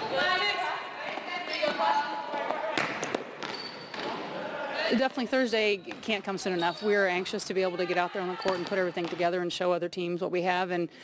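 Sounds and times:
reverberant gym noise: 0:00.0 - 0:11.0
high squeak: 0:03.5 - 0:04.0.

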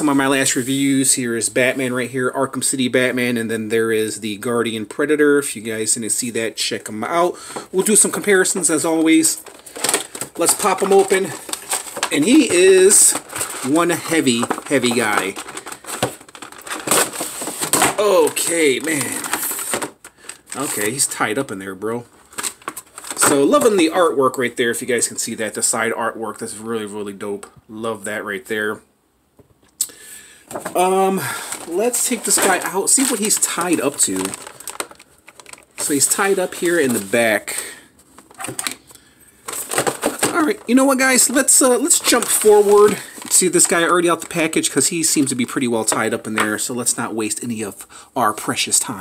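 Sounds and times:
plastic packaging crackling: 0:07.0 - 0:24.2, 0:30.5 - 0:47.8
cardboard packaging clicks and taps: 0:14.4 - 0:18.0.

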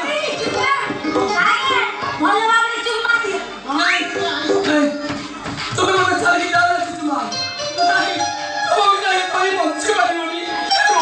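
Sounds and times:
actors talking loudly: 0:00.0 - 0:11.0.

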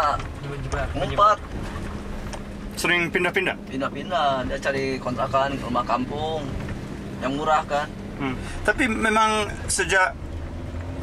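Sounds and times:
low rumble and hum: 0:00.0 - 0:11.0
voices: 0:02.7 - 0:10.2.

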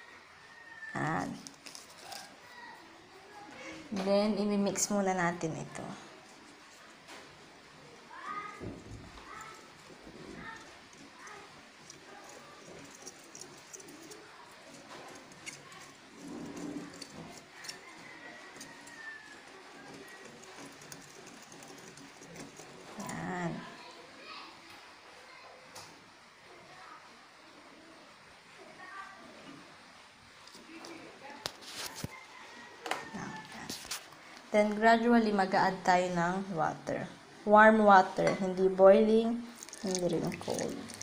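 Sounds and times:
background voices: 0:38.2 - 0:41.0.

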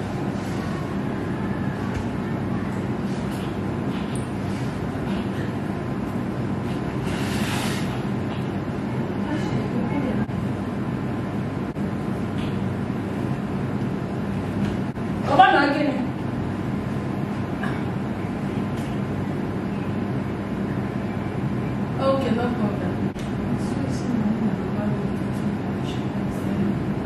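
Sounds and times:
low mechanical hum and rumble: 0:00.0 - 0:27.0.

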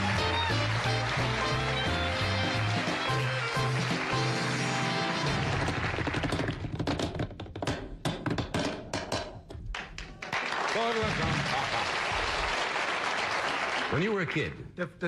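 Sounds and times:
studio band music: 0:00.0 - 0:05.9.

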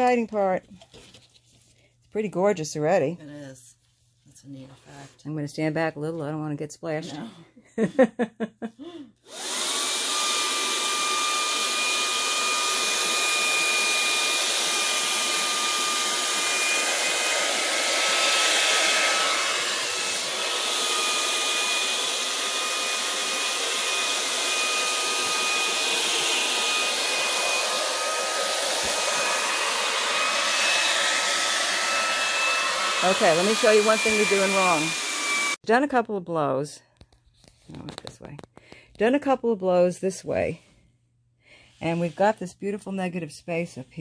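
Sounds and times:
electric air blower running: 0:09.2 - 0:35.6.

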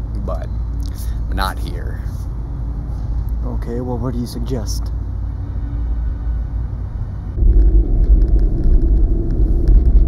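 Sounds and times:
car driving on highway rumble: 0:05.1 - 0:10.0.

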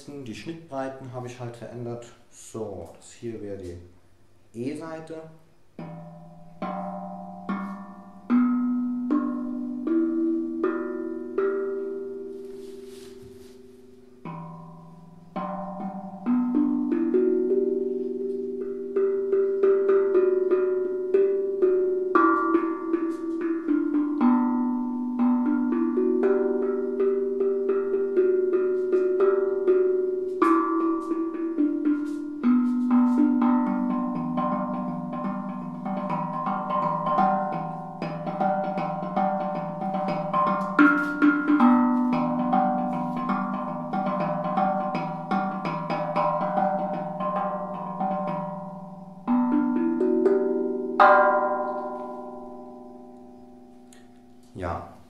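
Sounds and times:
steel tongue drum notes ringing: 0:04.6 - 0:55.0.

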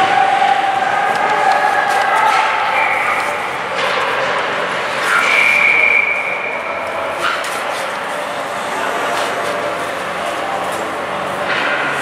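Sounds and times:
high voices shouting: 0:00.0 - 0:03.8.

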